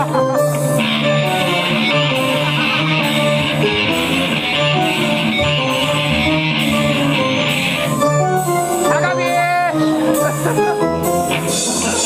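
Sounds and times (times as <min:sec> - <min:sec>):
electric guitar: 0:00.0 - 0:12.0
live rock band playing: 0:00.0 - 0:12.0.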